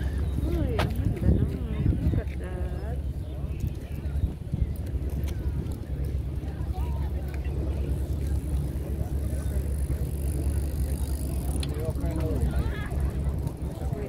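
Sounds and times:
faint voices: 0:00.0 - 0:14.0
wind buffeting microphone: 0:00.0 - 0:14.0.

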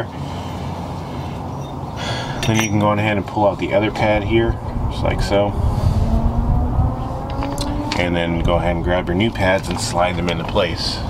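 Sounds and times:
low background rumble: 0:01.0 - 0:11.0.

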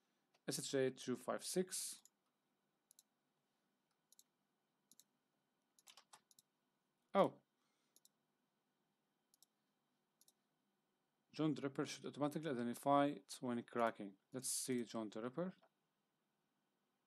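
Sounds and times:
mouse and keyboard clicks: 0:05.8 - 0:06.5.

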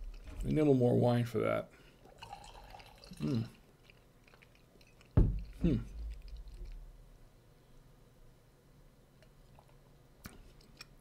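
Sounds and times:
man chewing: 0:03.3 - 0:07.0
low thump: 0:05.2 - 0:05.4.

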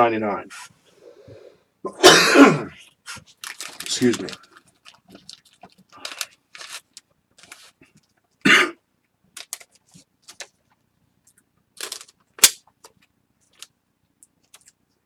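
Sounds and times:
foil card packs crinkling: 0:03.1 - 0:07.8.

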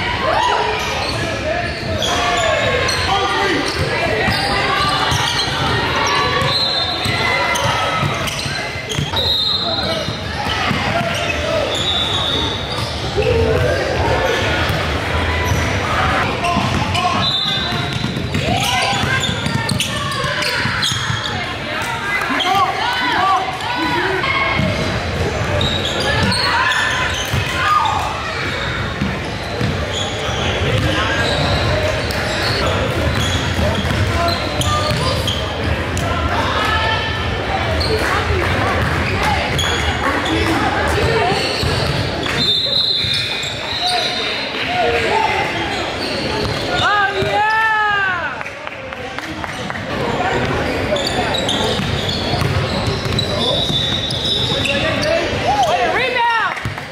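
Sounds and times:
voices echoing in a hall: 0:00.0 - 0:56.9.

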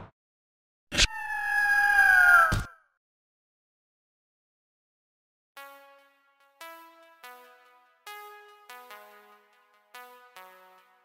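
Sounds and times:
long clear high cry: 0:01.0 - 0:02.6.

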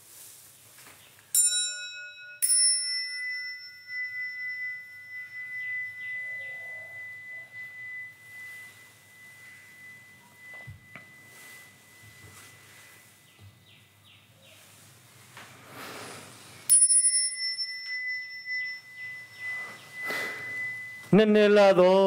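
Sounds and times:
altar bell ringing: 0:01.3 - 0:14.0, 0:16.6 - 0:22.0.

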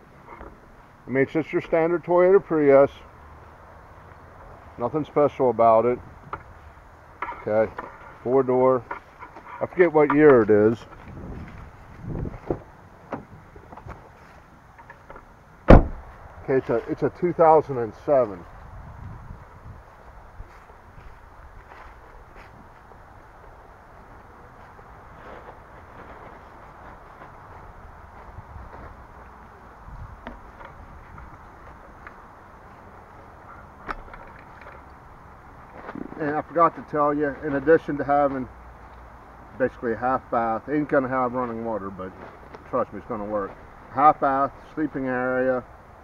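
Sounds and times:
rustling handling noise: 0:06.5 - 0:15.2, 0:24.1 - 0:37.9, 0:41.4 - 0:44.0
loud sharp thump: 0:15.7 - 0:16.1.

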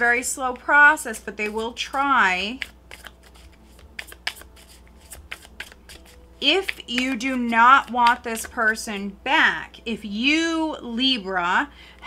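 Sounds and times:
cards being shuffled: 0:01.1 - 0:09.0.

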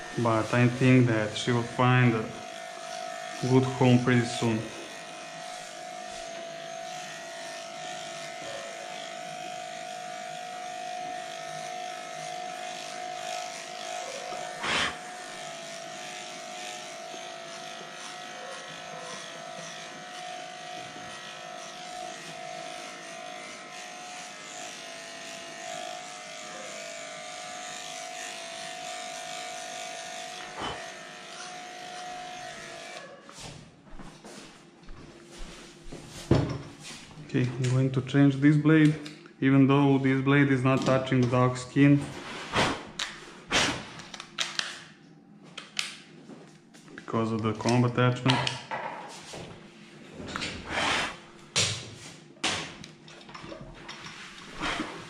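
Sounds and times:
electric clippers humming: 0:00.0 - 0:34.1.

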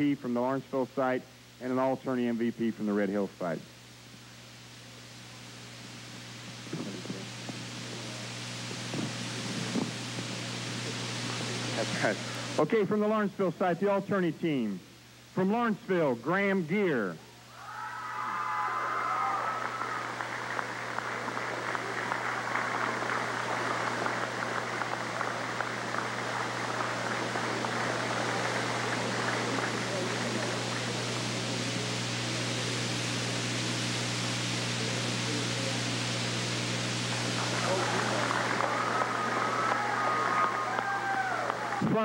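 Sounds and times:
low electrical hum: 0:00.0 - 0:42.0
crowd applauding: 0:17.6 - 0:32.3, 0:37.1 - 0:42.0.

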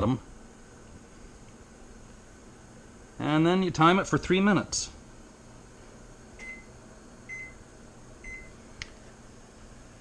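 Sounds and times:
faint steady hum: 0:00.0 - 0:10.0
keypad beeps: 0:06.4 - 0:06.7, 0:07.3 - 0:07.6, 0:08.2 - 0:08.5.

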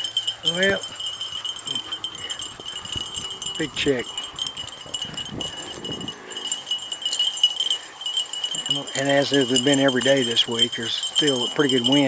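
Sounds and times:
small collar bells jingling: 0:00.0 - 0:12.0.

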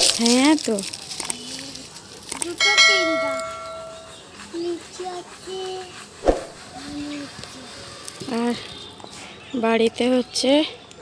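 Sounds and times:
bell chime: 0:02.6 - 0:04.1.

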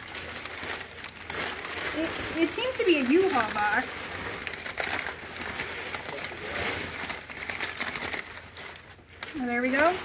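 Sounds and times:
crumpled newspaper rustling: 0:00.0 - 0:10.0.

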